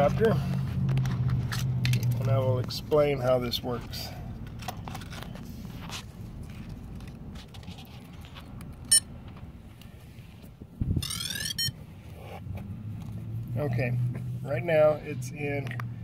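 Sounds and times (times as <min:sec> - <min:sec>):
rising electronic chirps: 0:11.0 - 0:11.8
short electronic beep: 0:11.0 - 0:11.8.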